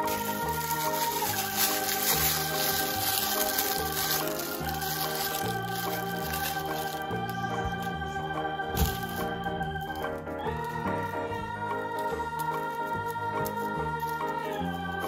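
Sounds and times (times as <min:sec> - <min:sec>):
organ-like keyboard chords: 0:00.0 - 0:15.0.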